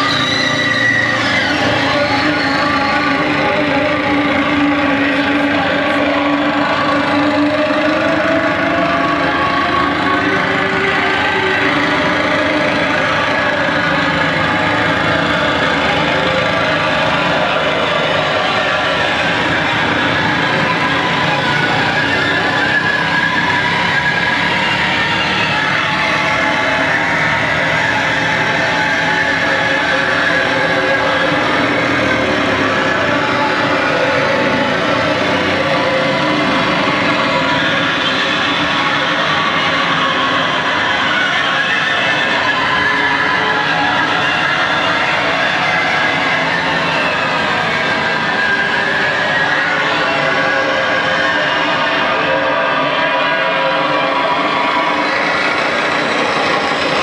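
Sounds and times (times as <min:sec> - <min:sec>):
harsh distorted noise music: 0:00.0 - 0:57.0.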